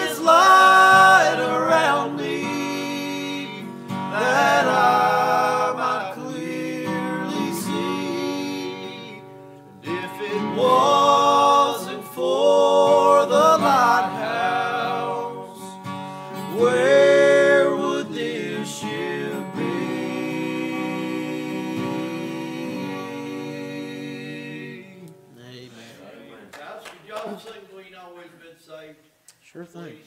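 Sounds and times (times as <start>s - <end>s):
men singing gospel song: 0.0s - 25.1s
acoustic guitar: 0.0s - 26.1s.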